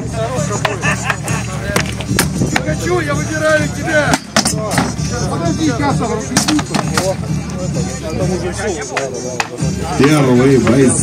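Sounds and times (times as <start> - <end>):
music: 0.0 - 11.0
weapons striking wooden shields: 4.1 - 5.0, 6.4 - 7.2.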